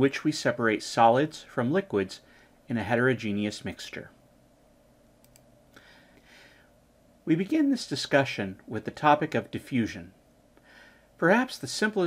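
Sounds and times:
faint hiss: 0.0s - 12.0s
faint room hum: 0.0s - 12.0s
faint quick clicks: 5.2s - 5.8s.

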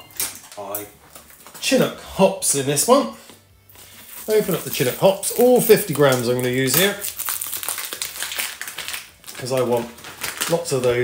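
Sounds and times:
plastic bag crinkling: 3.8s - 11.0s.

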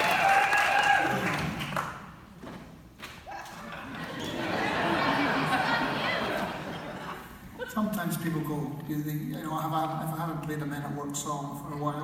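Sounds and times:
audience voices echoing in hall: 0.0s - 2.3s, 3.0s - 9.0s.

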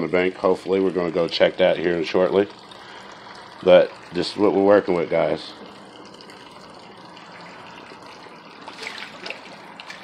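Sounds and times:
water trickling into barrel: 0.0s - 10.0s
dip net splashing in water: 8.6s - 10.0s.

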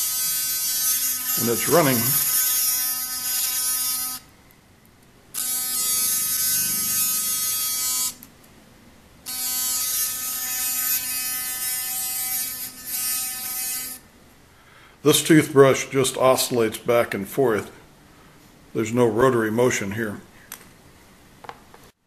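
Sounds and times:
electric toothbrush buzzing: 0.0s - 4.3s, 5.3s - 8.3s, 9.2s - 14.1s.

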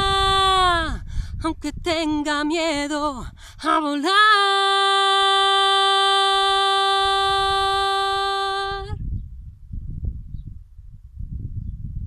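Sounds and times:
wind buffeting microphone: 0.0s - 5.1s, 6.4s - 12.0s
woman singing unaccompanied: 0.0s - 9.0s.

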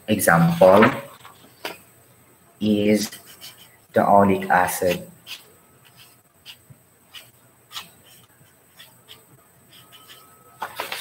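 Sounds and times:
faint room hiss: 0.0s - 11.0s
pen writing strokes: 5.2s - 10.3s.

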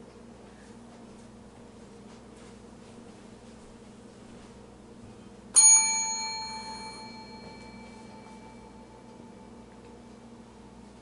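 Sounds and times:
bell ringing: 5.6s - 9.6s.

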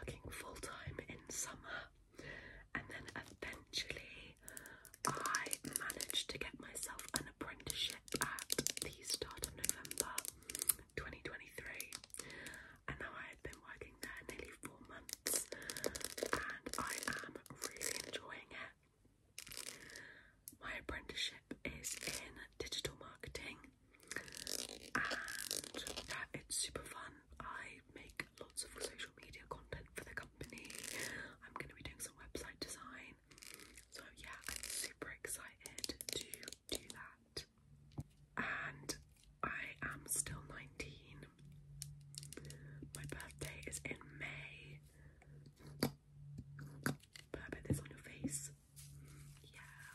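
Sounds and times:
person whispering: 0.0s - 2.0s, 2.6s - 18.8s, 19.7s - 33.2s, 33.9s - 37.5s, 38.4s - 41.4s, 42.2s - 44.9s, 46.6s - 49.9s.

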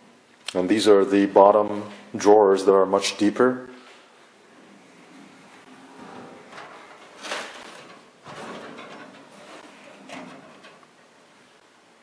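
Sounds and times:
drawer sliding on rails: 4.5s - 11.1s.

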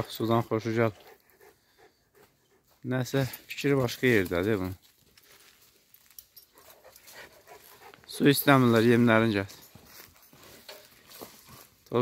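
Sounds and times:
dog panting: 0.5s - 3.4s, 6.4s - 8.7s.

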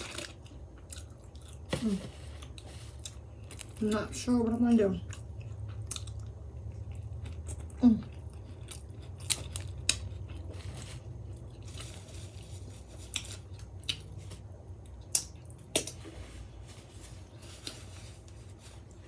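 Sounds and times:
person chewing wetly: 0.0s - 3.8s, 5.0s - 12.0s, 13.0s - 16.0s
steady low hum: 0.0s - 19.0s.

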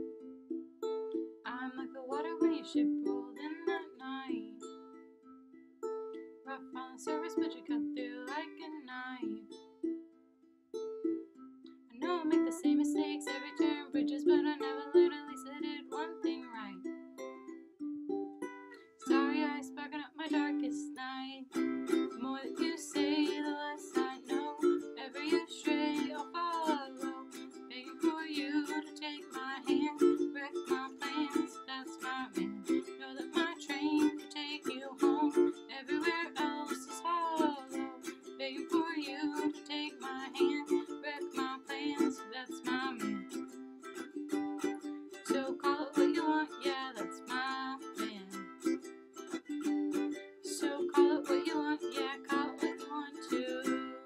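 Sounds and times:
ukulele strumming: 0.0s - 54.0s
person singing: 1.4s - 4.7s, 6.5s - 9.6s, 11.9s - 16.9s, 18.8s - 44.1s, 44.7s - 48.9s, 49.6s - 54.0s.

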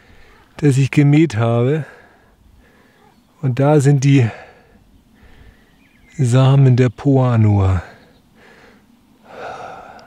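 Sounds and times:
man breathing: 0.0s - 0.6s, 1.8s - 3.1s, 4.3s - 5.8s, 8.0s - 10.0s.

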